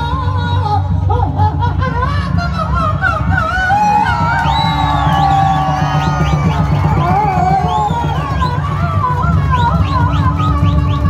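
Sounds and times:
drum ensemble playing rapidly: 3.7s - 11.0s.

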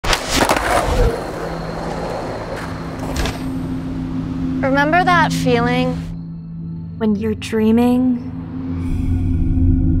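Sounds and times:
skateboard rolling on pavement: 0.1s - 3.4s.

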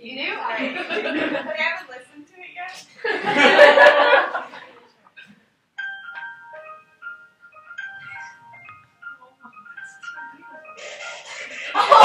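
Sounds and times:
simple electronic melody: 5.8s - 12.0s.

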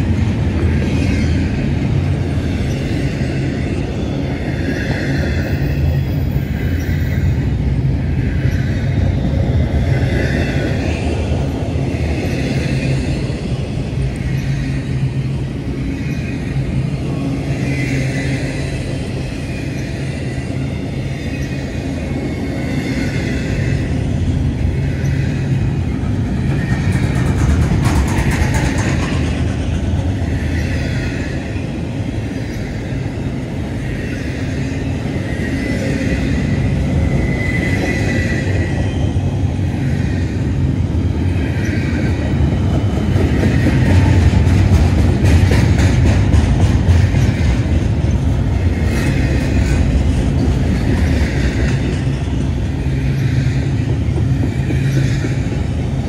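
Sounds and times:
train wheels rumbling on rail: 0.0s - 56.0s.

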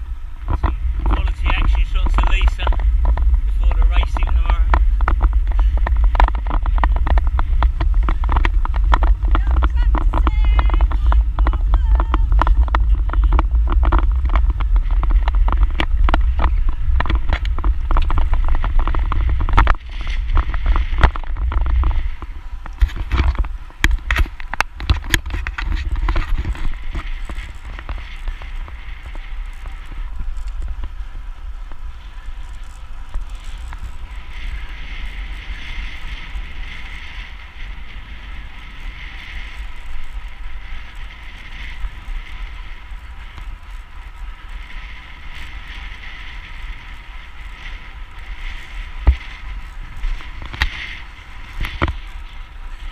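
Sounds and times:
bicycle tyre noise on tarmac: 0.0s - 52.9s
wind buffeting microphone: 0.0s - 52.9s
sharp clicks and knocks: 3.9s - 28.8s.

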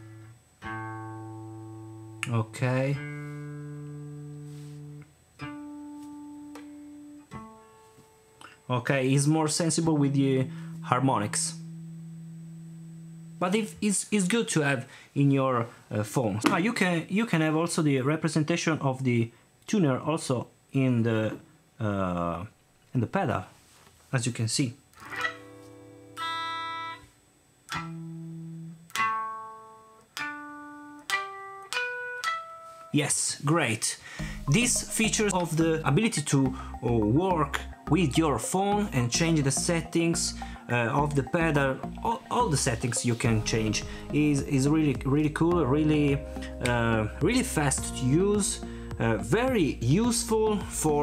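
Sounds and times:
electric guitar notes ringing: 0.0s - 13.8s, 25.0s - 33.0s, 34.1s - 51.0s.

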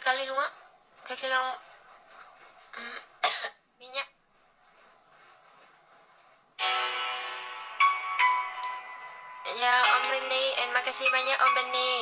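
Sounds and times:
woman coughing: 2.8s - 3.6s.

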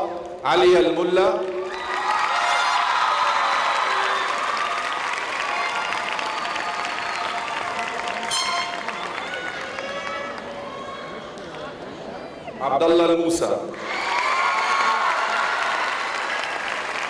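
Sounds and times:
audience applauding: 1.6s - 11.8s, 13.8s - 17.0s
cheering: 1.6s - 11.9s, 13.7s - 17.0s.

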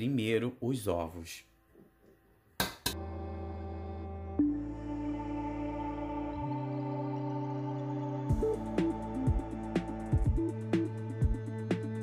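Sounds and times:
background music: 2.8s - 12.0s.

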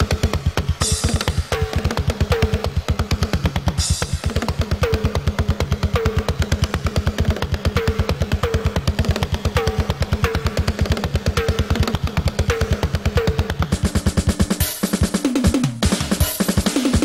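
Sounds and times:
fast bass drum strokes: 0.0s - 17.0s
tom and cymbal hits: 0.0s - 17.0s.

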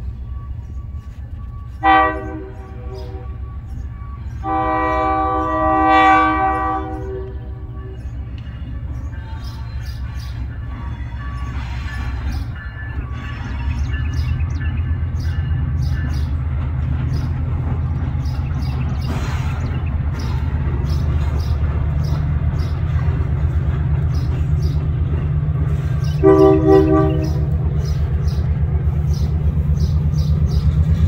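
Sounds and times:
train horn blast: 1.7s - 8.2s, 26.0s - 27.6s
diesel engine rumble: 14.3s - 31.0s.

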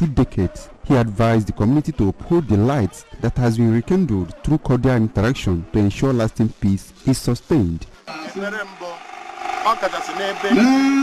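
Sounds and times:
man speaking: 0.0s - 9.0s, 9.6s - 11.0s.

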